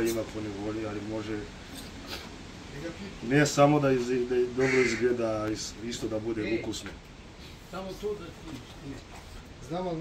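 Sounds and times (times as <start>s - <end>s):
man talking: 0.0s - 1.6s, 2.6s - 7.0s, 7.7s - 10.0s.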